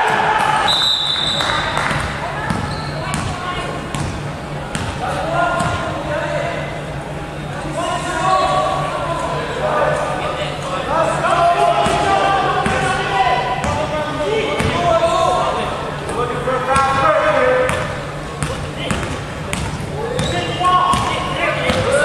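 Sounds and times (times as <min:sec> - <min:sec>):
players shouting: 0:00.0 - 0:03.9, 0:10.8 - 0:17.6.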